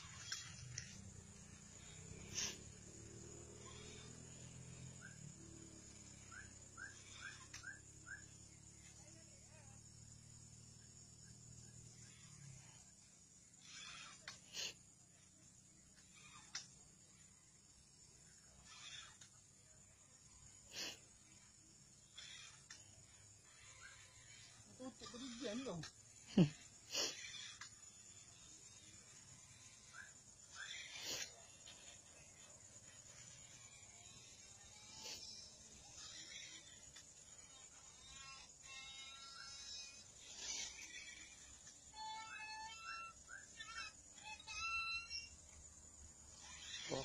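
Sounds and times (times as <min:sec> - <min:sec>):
bird chirping: 0:04.9 - 0:09.3.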